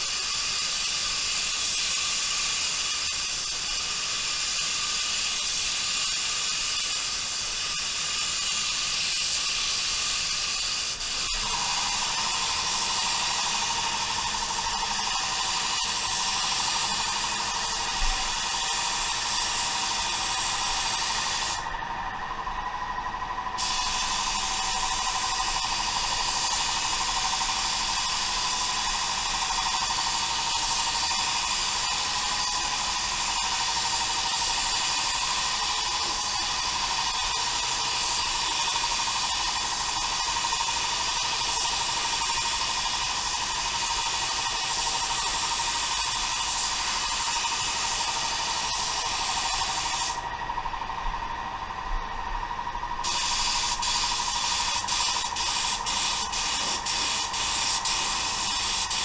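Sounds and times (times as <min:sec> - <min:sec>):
spray gun air hiss: 0:00.0 - 0:21.9, 0:23.0 - 0:50.8, 0:53.0 - 0:59.0
steady whine: 0:11.2 - 0:59.0.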